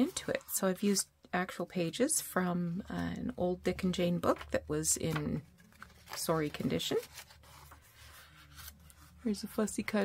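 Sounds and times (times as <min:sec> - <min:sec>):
paper page rustling: 0:05.1 - 0:10.0.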